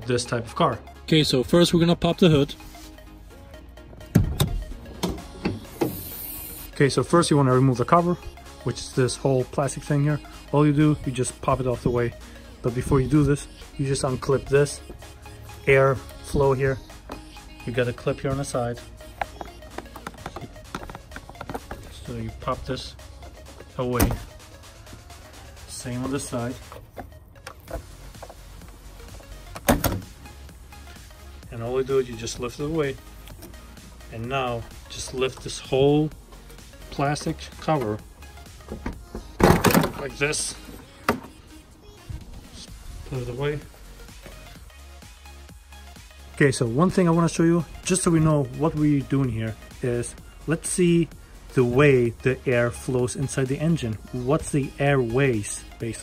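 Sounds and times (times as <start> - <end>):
car hood latch clicks and knocks: 4.1 - 5.9, 29.5 - 30.1.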